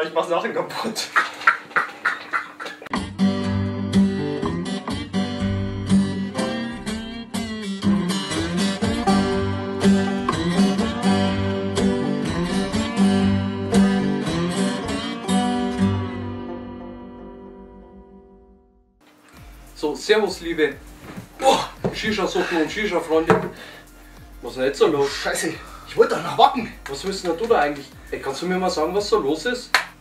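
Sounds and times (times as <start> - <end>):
strummed acoustic guitar: 2.9 - 17.9
bass line: 3.0 - 18.7.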